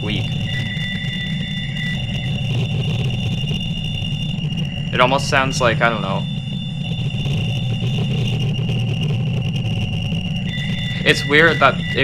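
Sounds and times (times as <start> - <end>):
deep rumbling rattling noise: 0.0 - 12.0
high-pitched whistle tones: 0.0 - 12.0.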